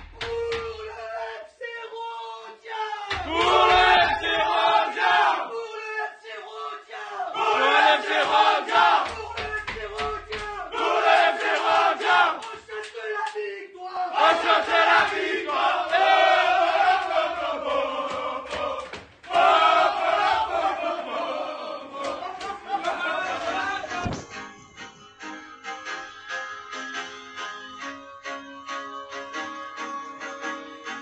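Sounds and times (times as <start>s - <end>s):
hand claps: 0.0s - 1.0s, 3.1s - 4.7s, 7.8s - 13.5s, 14.3s - 19.6s, 22.0s - 23.0s
men chanting and shouting: 0.0s - 24.2s.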